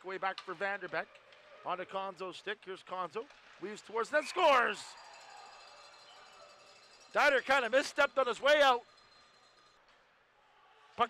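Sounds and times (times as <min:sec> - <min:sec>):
thin high tones: 0:04.1 - 0:09.8.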